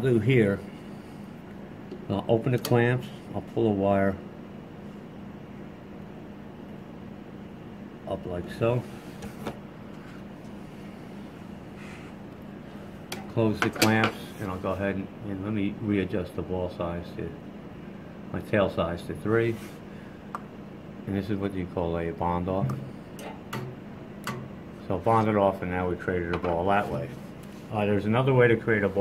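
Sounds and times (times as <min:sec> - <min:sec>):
low machine hum: 0:00.0 - 0:29.0.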